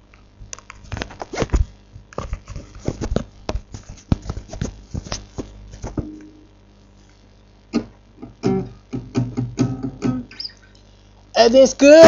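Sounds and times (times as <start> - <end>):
hands fumbling near microphone: 0.7 - 6.2.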